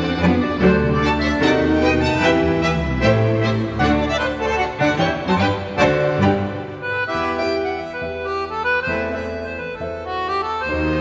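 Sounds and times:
accordion melody: 0.0 - 11.0
tango orchestra music: 0.0 - 11.0.

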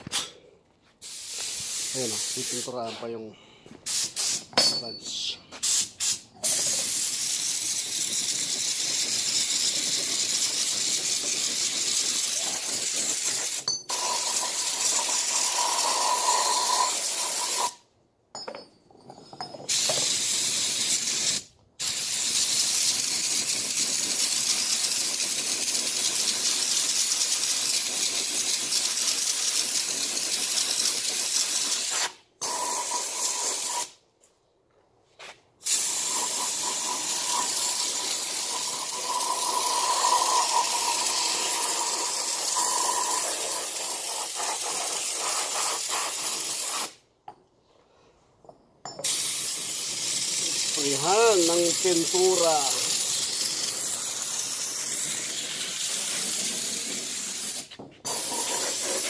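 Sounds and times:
spray paint can hissing: 1.0 - 3.0, 3.8 - 4.5, 5.5 - 17.8, 19.7 - 34.0, 35.2 - 47.0, 49.0 - 59.0.

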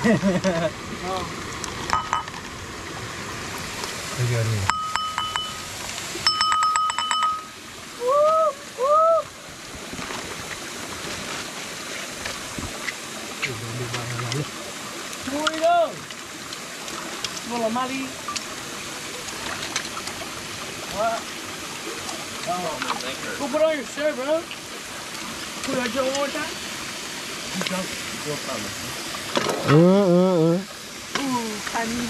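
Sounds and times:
creek water running: 0.0 - 32.0
rapid clicking ringing sounds: 4.7 - 7.6.

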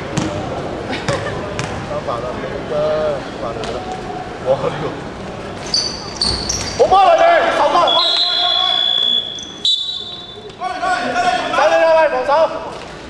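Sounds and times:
players shouting: 6.1 - 12.3
referee's whistle blasts: 7.8 - 10.6.

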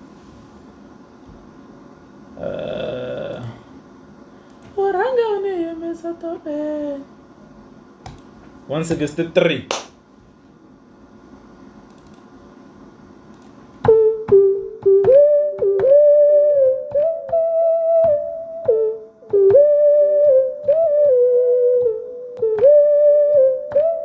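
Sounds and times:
faint steady hum: 0.0 - 24.0
synthesizer lead melody: 13.9 - 24.0.

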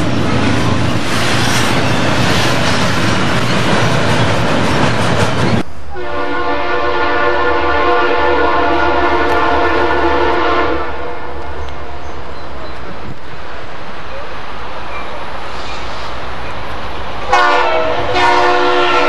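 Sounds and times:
freight train rumbling past: 0.0 - 19.0
locomotive air horn chord: 5.9 - 11.4, 17.3 - 19.0.

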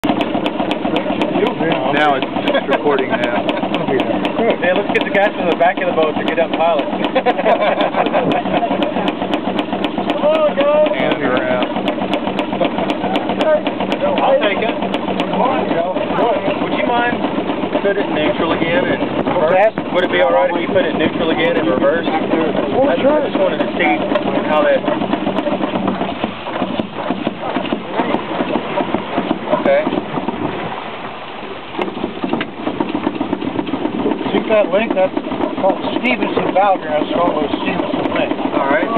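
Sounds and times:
steam engine mechanical clicking: 0.0 - 20.2
steam engine hum: 0.0 - 38.9.

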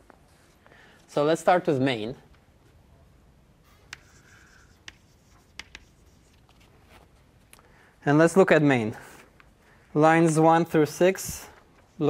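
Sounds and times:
chalk scratching on blackboard: 3.6 - 7.1.

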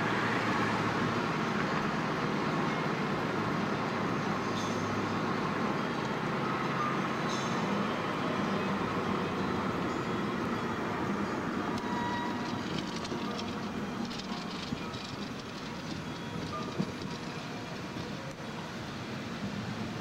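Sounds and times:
car road noise from inside: 10.4 - 19.2.

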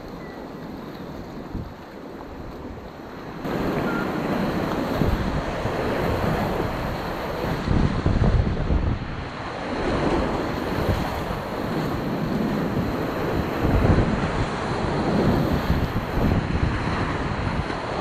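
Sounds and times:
whitewater rushing and splashing: 1.5 - 18.0.

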